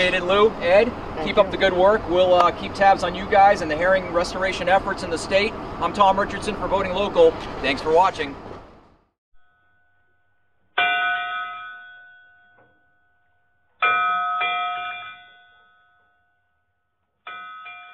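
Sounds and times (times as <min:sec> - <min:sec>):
bell ringing: 0:10.8 - 0:13.2, 0:13.8 - 0:16.4, 0:17.3 - 0:17.9.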